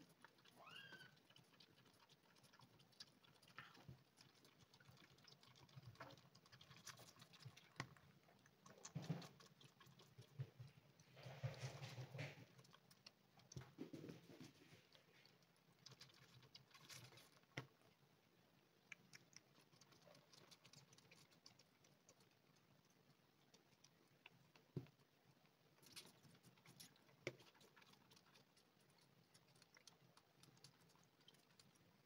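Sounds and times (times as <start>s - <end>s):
kitten suckling wet clicks: 0.0s - 18.0s, 18.7s - 32.0s.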